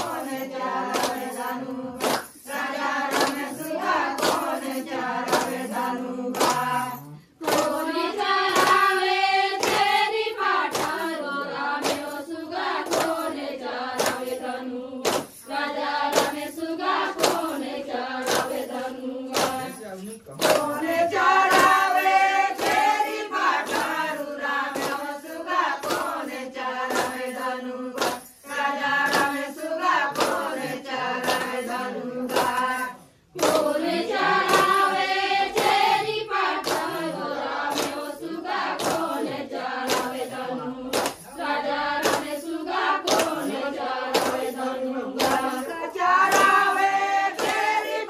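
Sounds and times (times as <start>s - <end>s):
women singing in chorus: 0.0s - 19.8s, 20.4s - 48.0s
sharp handclaps: 0.0s - 48.0s.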